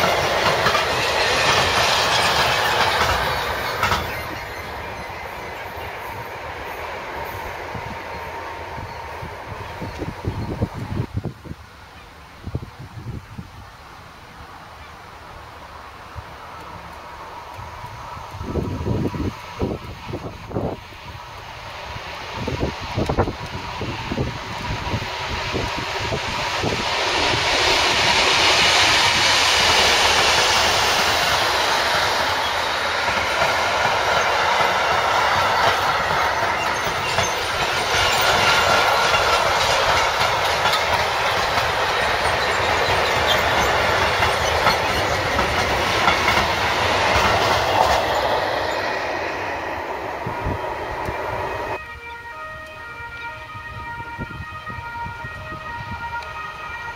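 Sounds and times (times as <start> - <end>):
freight train rolling over rails: 0.0 - 56.9.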